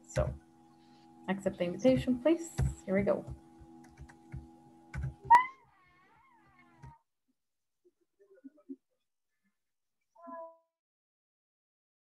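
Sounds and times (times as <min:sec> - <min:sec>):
animal high wavering call: 0:05.3 - 0:05.6.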